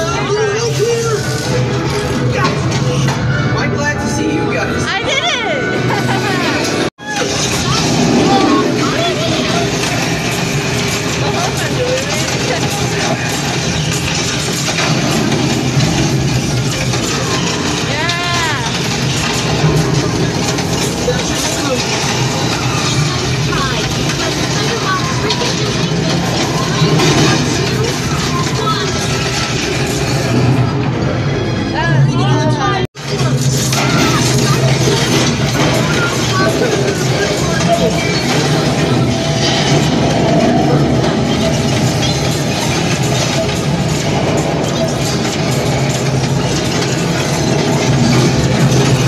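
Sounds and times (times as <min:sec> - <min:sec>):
voices: 0:00.0 - 0:49.0.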